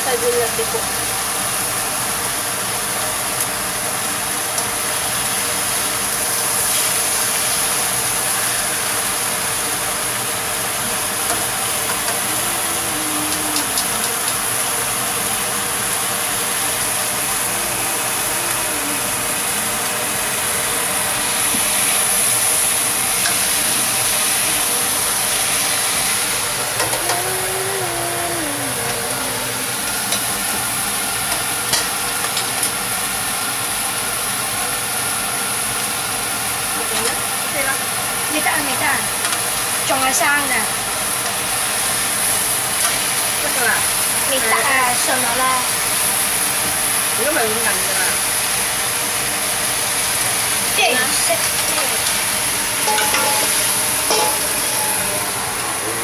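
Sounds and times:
meat sizzling in hot oil: 0:00.0 - 0:28.3, 0:29.4 - 0:55.8.

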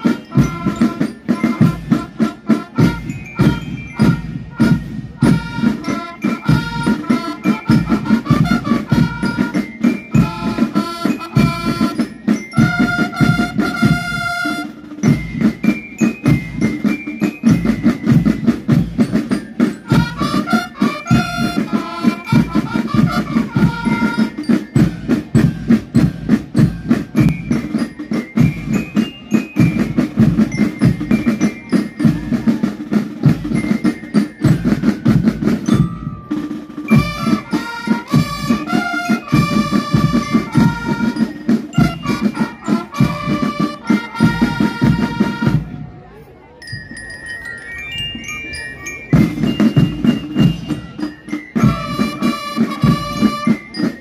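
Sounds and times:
bugles playing: 0:00.0 - 0:45.8, 0:49.2 - 0:54.0
drums beating fast: 0:00.0 - 0:46.0, 0:49.0 - 0:54.0
marching band playing: 0:00.0 - 0:46.3, 0:47.9 - 0:54.0.

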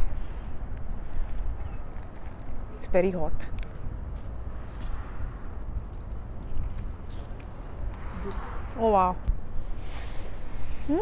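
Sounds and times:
steady low city rumble: 0:00.0 - 0:11.0.

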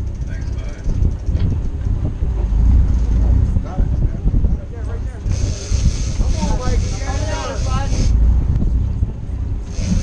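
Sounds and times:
boat engines rumbling: 0:00.0 - 0:10.0
wind buffeting microphone: 0:00.0 - 0:10.0
steady hiss: 0:05.3 - 0:08.2, 0:09.7 - 0:10.0.

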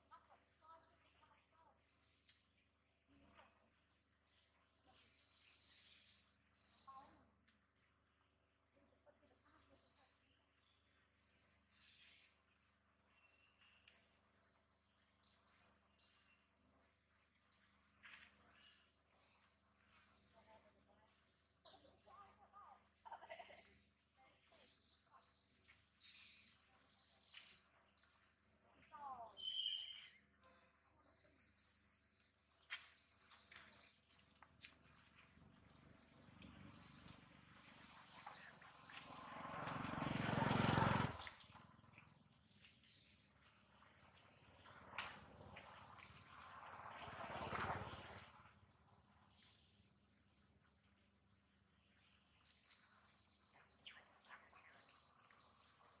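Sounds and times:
small birds chirping: 0:00.0 - 0:56.0
rushes of noise: 0:39.0 - 0:41.8, 0:44.6 - 0:48.9.

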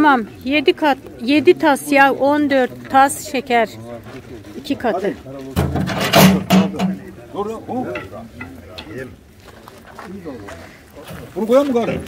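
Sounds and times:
men talking: 0:03.7 - 0:12.0.

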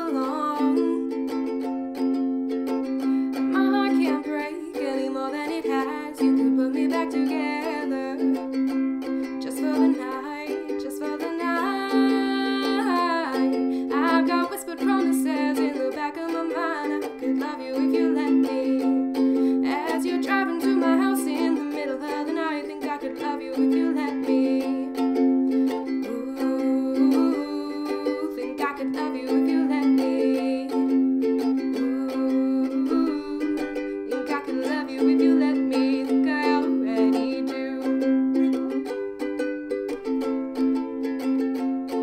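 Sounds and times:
woman singing: 0:00.0 - 0:02.1, 0:02.7 - 0:39.2
ukulele strumming: 0:00.0 - 0:42.0.

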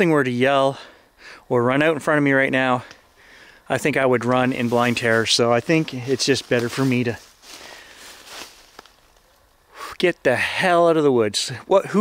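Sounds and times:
man breathing out softly: 0:03.0 - 0:03.7, 0:07.5 - 0:08.2.

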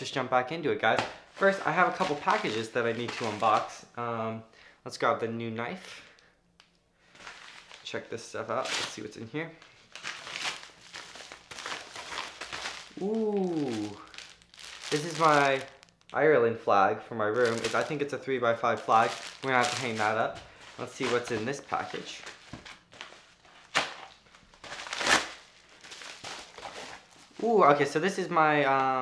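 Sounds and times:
paper envelope rustling and tearing: 0:01.4 - 0:03.7, 0:09.7 - 0:16.0, 0:17.4 - 0:18.0, 0:18.6 - 0:27.5.

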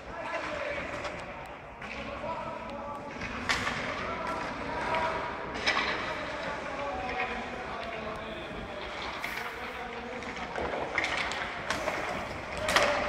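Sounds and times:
sharp puck impacts: 0:09.2 - 0:13.0.

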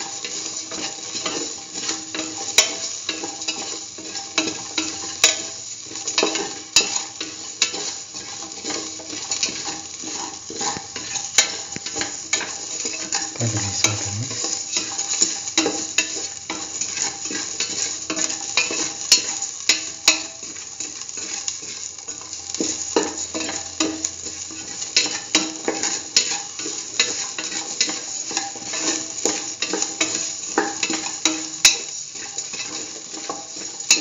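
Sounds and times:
food sizzling in oil: 0:00.0 - 0:34.0.

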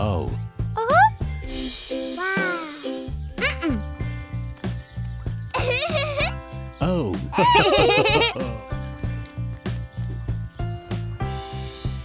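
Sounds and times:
background music with steady beat: 0:00.0 - 0:12.0
cartoon characters giggling: 0:05.6 - 0:06.4, 0:07.3 - 0:08.6.

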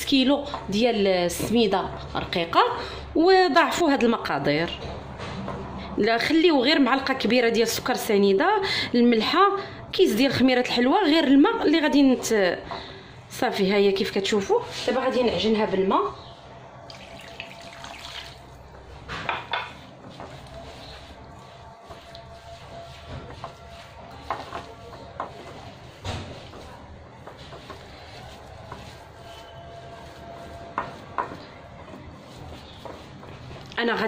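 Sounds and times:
water pouring onto semolina: 0:16.9 - 0:18.6
hands kneading damp dough: 0:16.9 - 0:34.0.

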